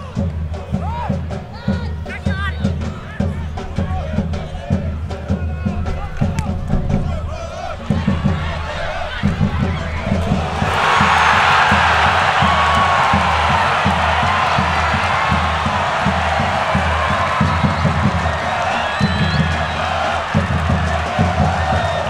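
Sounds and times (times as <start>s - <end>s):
stadium crowd cheering: 0.0s - 22.0s
low drumbeat: 0.1s - 22.0s.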